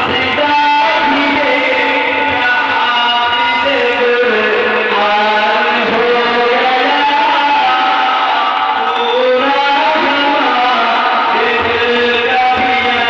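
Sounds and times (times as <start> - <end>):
man singing over pa system: 0.0 - 13.0.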